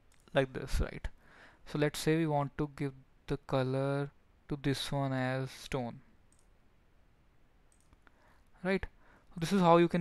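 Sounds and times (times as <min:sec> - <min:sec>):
faint computer mouse clicks: 0:06.3 - 0:06.6, 0:07.7 - 0:08.3.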